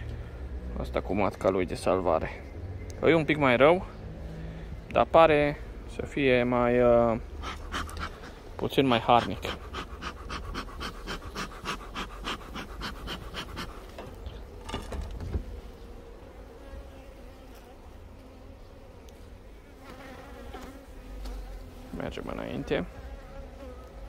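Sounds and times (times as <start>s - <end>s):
bees buzzing: 7.2s - 24.0s.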